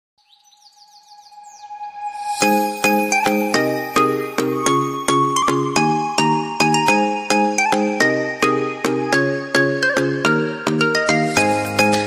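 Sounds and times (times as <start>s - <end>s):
bird chirps: 0.2s - 4.4s.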